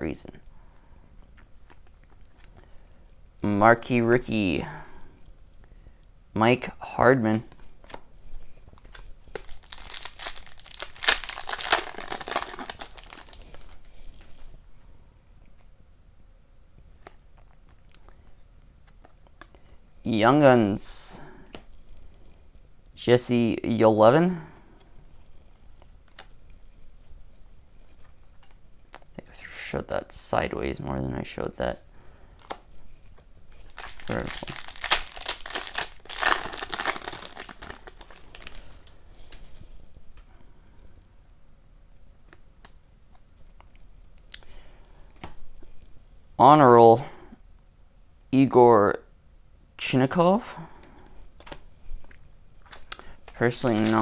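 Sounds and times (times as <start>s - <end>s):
foil wrapper tearing and crinkling: 8.8s - 13.9s, 33.7s - 38.8s, 52.7s - 54.0s.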